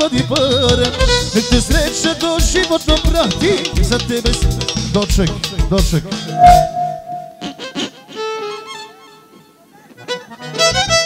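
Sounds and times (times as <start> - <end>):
instrument holding wavering notes: 6.3 - 7.8.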